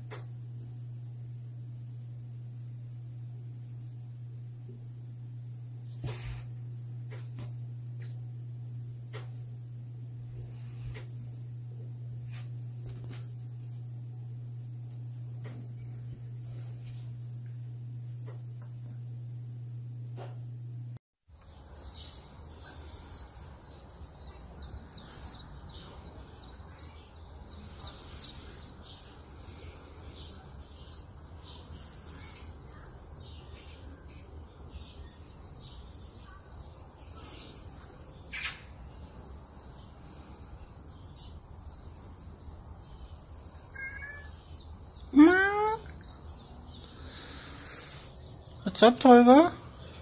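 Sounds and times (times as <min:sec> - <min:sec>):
steady low hum: 0:00.0 - 0:50.0
small birds chirping: 0:21.4 - 0:50.0.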